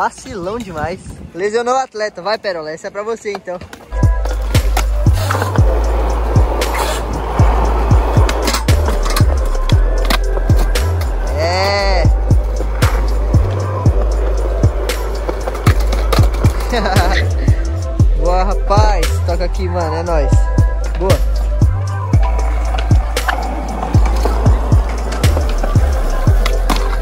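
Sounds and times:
skateboard rolling and clacking: 3.6s - 17.3s, 22.2s - 27.0s
music with deep bassline: 3.9s - 27.0s.

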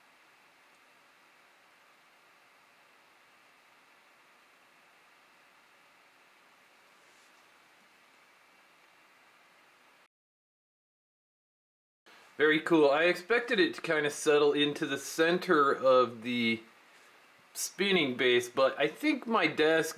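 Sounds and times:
faint recording hiss: 0.0s - 10.1s, 12.1s - 19.9s.

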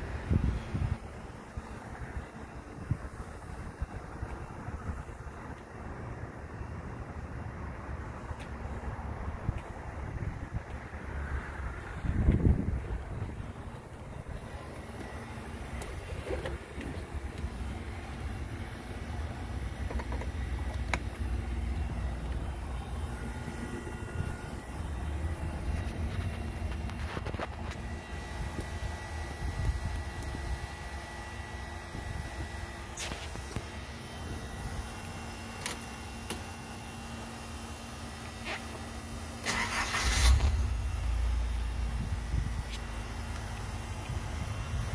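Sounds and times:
pickup engine idling: 0.0s - 44.9s
engine starter cranking: 39.4s - 40.8s
engine firing: 39.4s - 43.3s.

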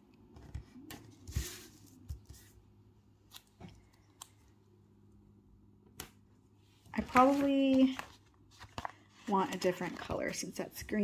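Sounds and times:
paper rustling: 7.0s - 10.6s.

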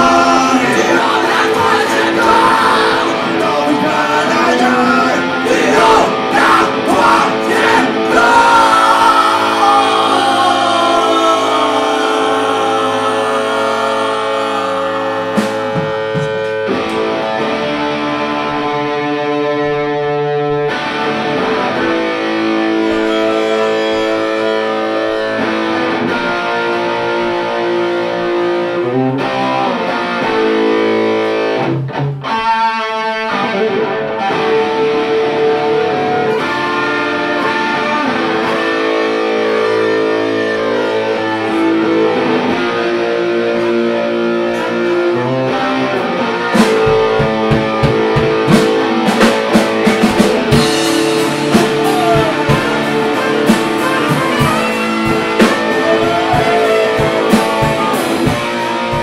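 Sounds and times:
live band playing guitar-led music: 0.0s - 59.0s.

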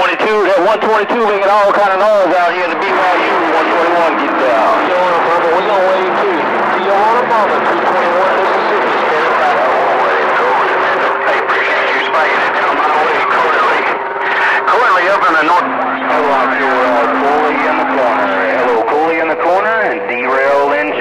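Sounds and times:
garbled voices over radio: 0.0s - 21.0s
radio static: 0.0s - 21.0s.

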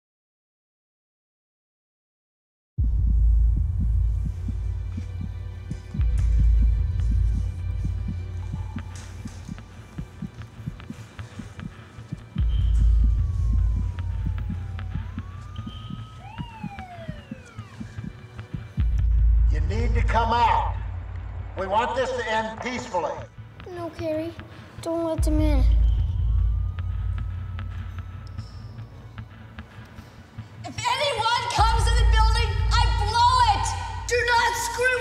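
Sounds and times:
deep boom hits: 2.8s - 8.3s
siren wailing: 12.4s - 19.1s, 25.8s - 29.2s
pulse of low ticks: 25.7s - 30.0s.

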